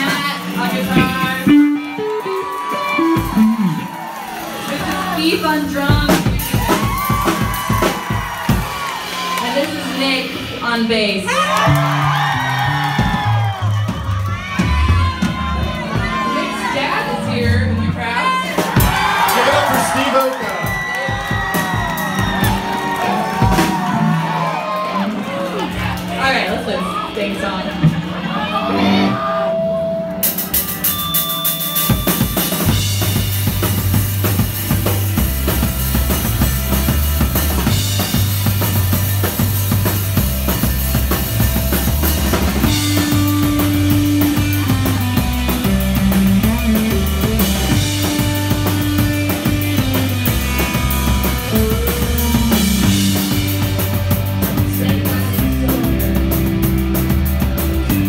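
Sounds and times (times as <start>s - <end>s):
electric bass guitar notes: 0.0s - 20.0s, 21.0s - 58.0s
drum kit beat: 0.0s - 25.2s, 30.1s - 58.0s
audience cheering and whooping: 1.2s - 5.5s, 6.3s - 10.2s, 11.2s - 17.4s, 18.0s - 27.3s, 27.9s - 30.9s.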